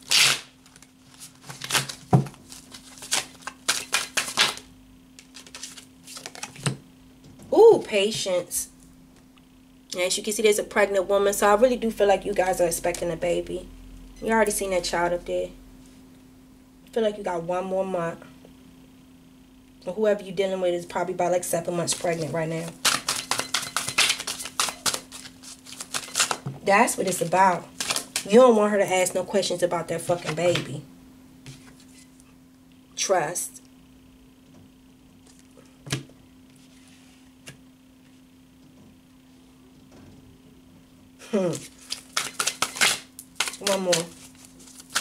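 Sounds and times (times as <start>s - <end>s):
cards shuffled by hand: 0.0s - 6.8s, 21.8s - 28.3s, 31.4s - 32.0s, 41.4s - 45.0s.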